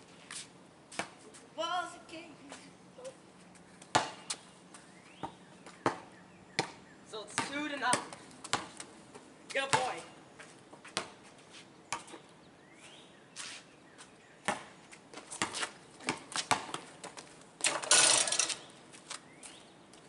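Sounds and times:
basketball bouncing on concrete: 0:03.8 - 0:04.4, 0:05.2 - 0:08.9, 0:09.5 - 0:10.1, 0:14.4 - 0:16.9.

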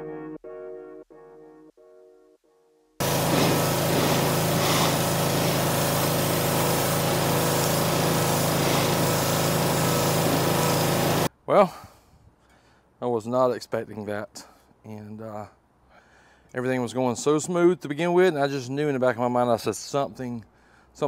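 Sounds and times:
pressure washer spraying: 0:03.0 - 0:11.3.

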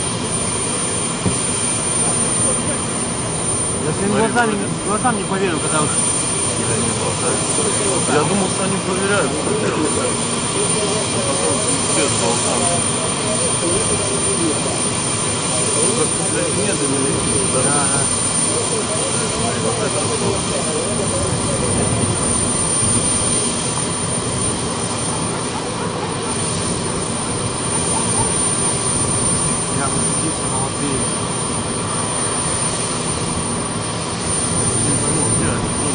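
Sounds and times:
distant jet roar: 0:00.0 - 0:35.9.

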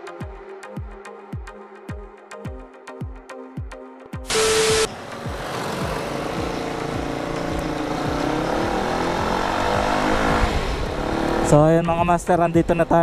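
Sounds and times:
wind noise on microphone: 0:10.0 - 0:11.4.

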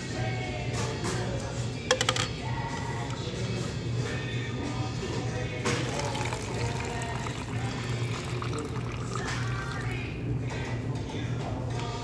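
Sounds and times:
background music: 0:00.0 - 0:12.0
water pouring into plastic cup: 0:05.8 - 0:10.1.

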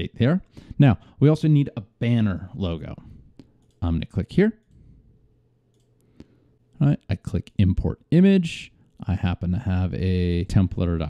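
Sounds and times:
faint low room hum: 0:00.0 - 0:11.0
computer mouse click: 0:03.4 - 0:03.8, 0:05.7 - 0:06.4.

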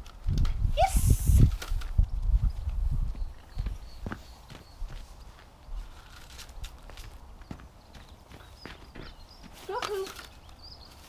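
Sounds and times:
footsteps on frosty grass: 0:02.3 - 0:10.1.

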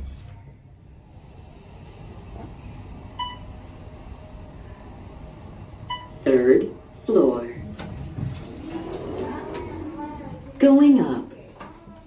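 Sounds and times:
elevator low rumble: 0:00.0 - 0:12.0.

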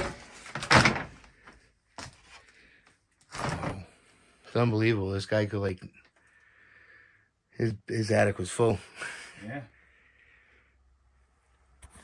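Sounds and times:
objects scraping: 0:00.0 - 0:04.1.

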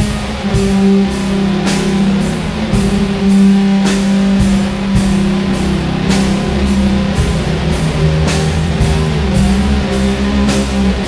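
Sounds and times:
distorted electric guitars: 0:00.0 - 0:11.0
drum kit steady beat: 0:00.0 - 0:11.0.

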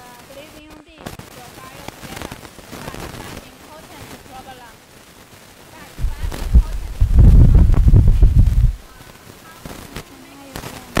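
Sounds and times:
woman talking: 0:00.0 - 0:04.8, 0:05.7 - 0:11.0
dense crackle of short clicks: 0:00.0 - 0:11.0.

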